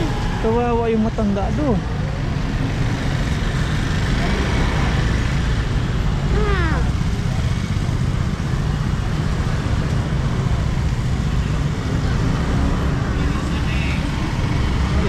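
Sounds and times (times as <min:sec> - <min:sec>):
scooter engines rumbling: 0:00.0 - 0:15.0.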